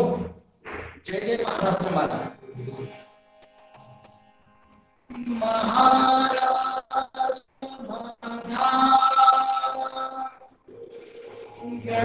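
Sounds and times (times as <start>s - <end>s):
man singing a long note: 5.1s - 10.5s, 11.2s - 12.0s.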